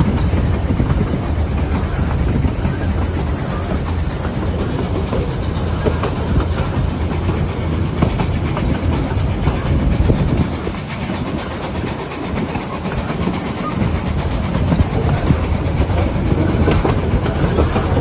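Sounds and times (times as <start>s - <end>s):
train wheels clattering on rails: 0.0s - 18.0s.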